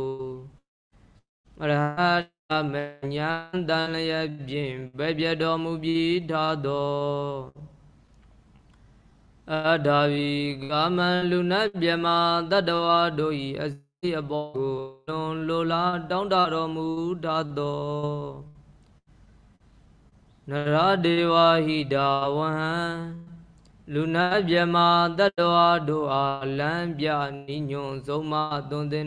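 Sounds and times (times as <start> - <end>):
man chanting: 1.6 - 7.7, 9.5 - 18.5, 20.5 - 29.0.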